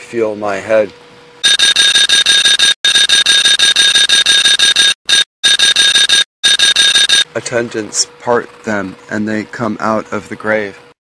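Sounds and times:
alarm bell ringing: 1.4s - 7.3s.

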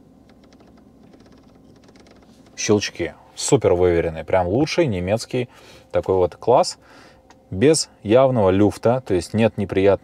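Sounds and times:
rotary knob detent clicks: 0.2s - 2.8s.

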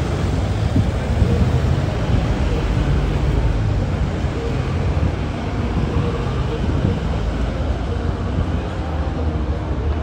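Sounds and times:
faint voices: 0.0s - 10.0s
low rumble of road traffic: 0.0s - 10.0s.

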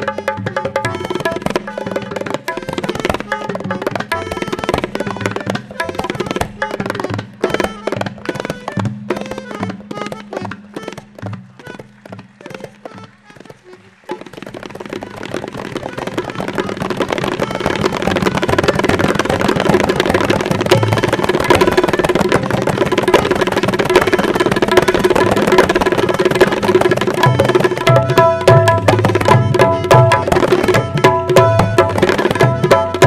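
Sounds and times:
hand drums playing: 0.0s - 33.0s.

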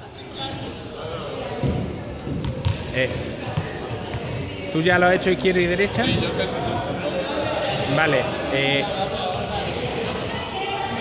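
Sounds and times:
ball bouncing on hall floor: 1.6s - 4.5s.

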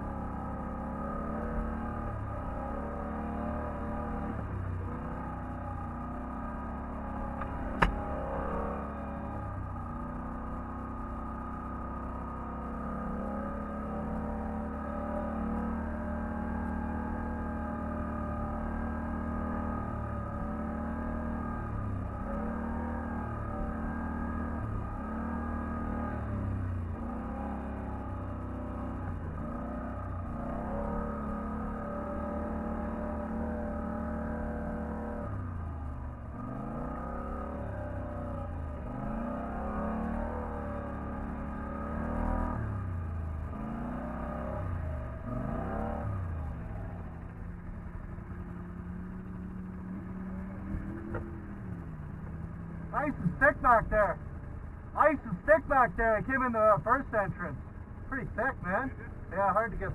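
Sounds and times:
atv engine revving: 0.0s - 59.9s.

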